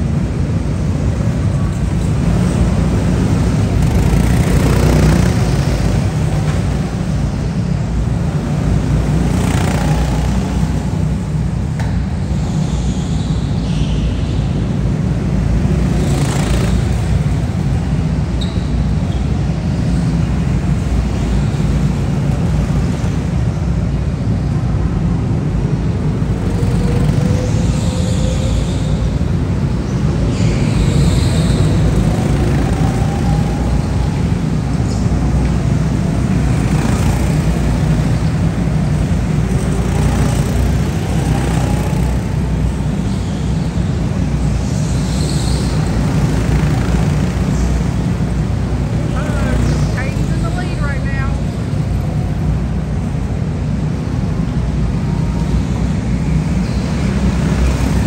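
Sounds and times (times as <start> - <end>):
go-karts passing by: 0.0 - 58.0
kart engine whine: 0.0 - 58.0.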